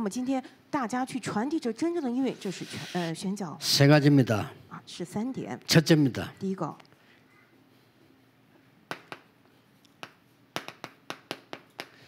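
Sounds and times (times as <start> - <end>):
chalk tapping on chalkboard: 10.0 - 11.9.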